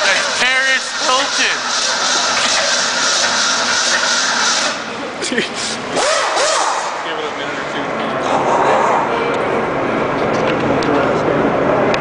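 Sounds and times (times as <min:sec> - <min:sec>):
engine running loudly: 0:00.0 - 0:05.0.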